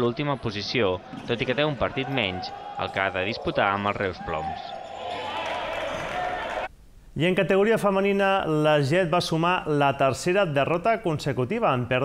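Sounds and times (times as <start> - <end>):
narrator speaking: 0.0 - 4.7
sports hall din: 0.0 - 6.8.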